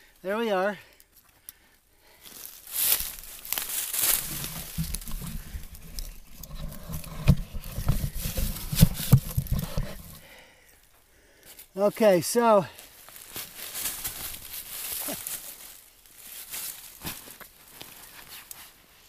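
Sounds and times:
tarp and dry leaves rustling: 0:02.1 - 0:10.2, 0:11.6 - 0:19.0
handling bumps: 0:03.1 - 0:10.2.

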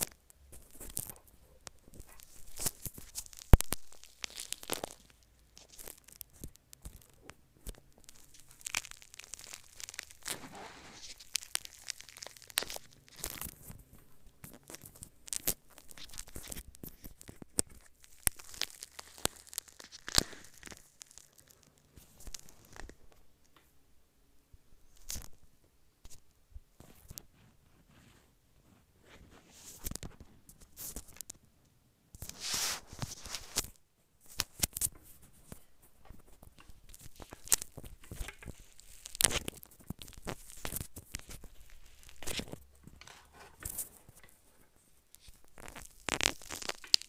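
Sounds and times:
sticky slime crackles and pops: 0:00.0 - 0:23.0, 0:29.6 - 0:31.4, 0:32.2 - 0:47.0.

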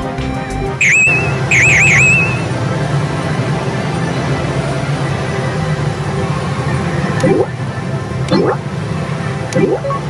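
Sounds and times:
low din of slot parlour: 0:00.0 - 0:10.0
slot machine music: 0:00.7 - 0:02.7
slot machine electronic chirps: 0:00.8 - 0:02.5.

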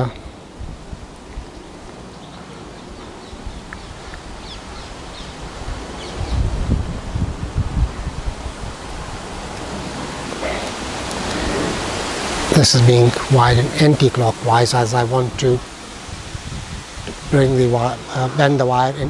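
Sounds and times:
wind buffeting microphone: 0:00.0 - 0:19.0
wind rushing: 0:00.0 - 0:19.0.

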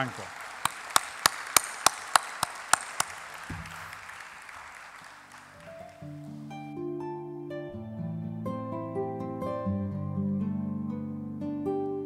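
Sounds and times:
sharp single claps: 0:00.0 - 0:06.2
audience applause: 0:00.0 - 0:06.6.

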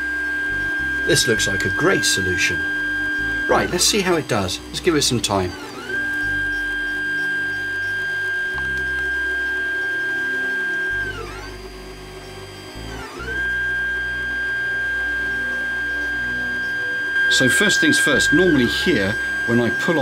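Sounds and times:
fan whirring: 0:00.0 - 0:20.0
stepper motors whining: 0:00.0 - 0:20.0.

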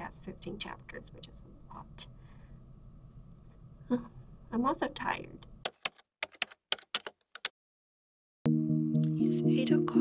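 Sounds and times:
keyboard key clicks: 0:05.7 - 0:07.5.

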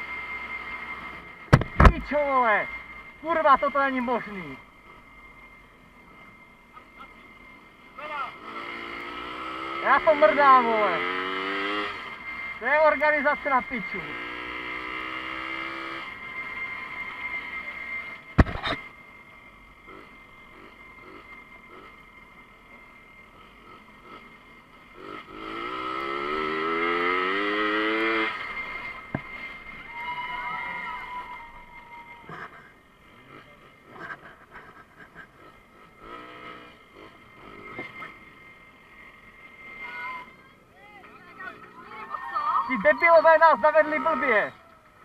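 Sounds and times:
moped engine revving: 0:00.0 - 0:45.0.

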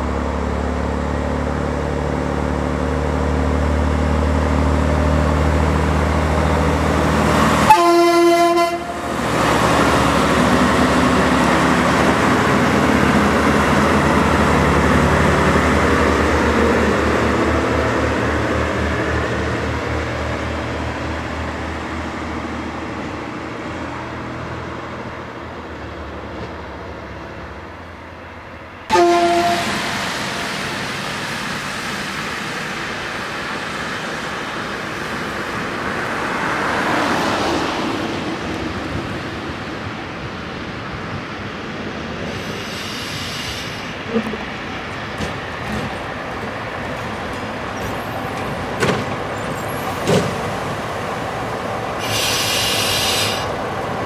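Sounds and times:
diesel railbus running past: 0:00.0 - 0:54.0
train horn: 0:07.6 - 0:09.1, 0:28.9 - 0:30.1.

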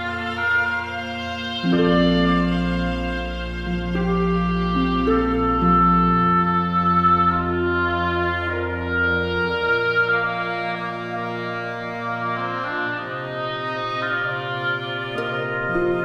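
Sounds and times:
orchestral strings sustained chords: 0:00.0 - 0:16.0.

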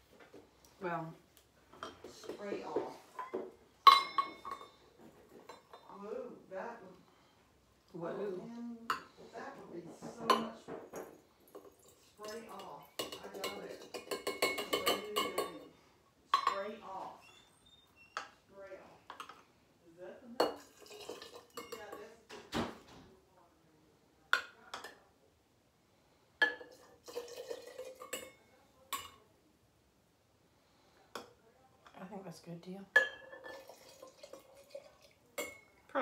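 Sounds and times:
metal clinking against glass: 0:03.2 - 0:04.8.

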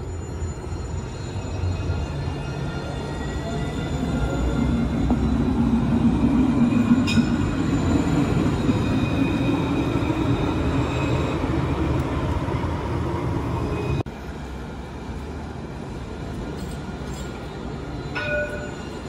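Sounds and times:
tram wheels rumbling on rails: 0:00.0 - 0:19.0.

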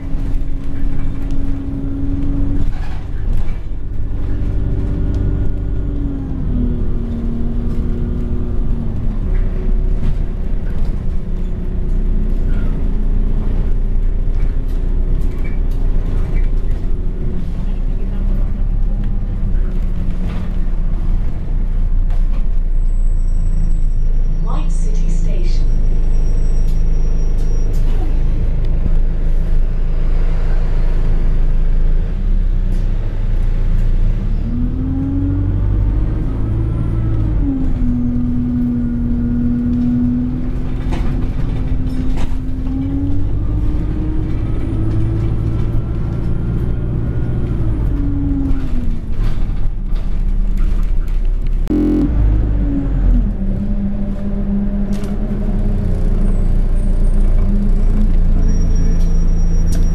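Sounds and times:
bus engine running: 0:00.0 - 0:59.9
rising drivetrain whine: 0:33.4 - 0:59.9.

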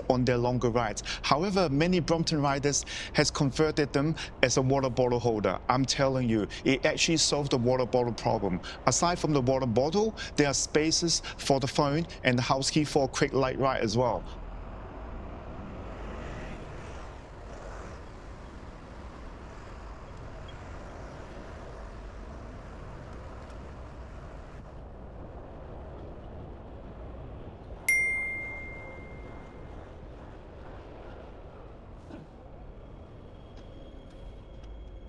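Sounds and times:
city street traffic: 0:00.0 - 0:35.0
sharp bell-like ding: 0:27.9 - 0:29.6.

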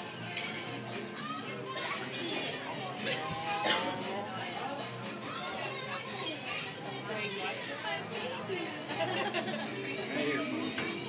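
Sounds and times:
restaurant chatter: 0:00.0 - 0:11.0.

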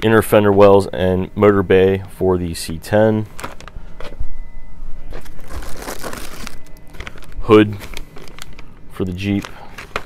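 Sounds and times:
plastic bags crinkling: 0:03.4 - 0:03.8, 0:05.0 - 0:10.0
cardboard box rustling: 0:05.2 - 0:07.3.

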